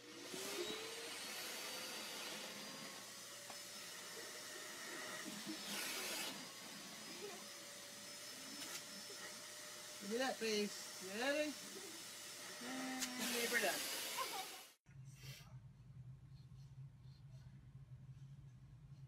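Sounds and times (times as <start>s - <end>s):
vacuum cleaner motor running: 0.0s - 14.8s.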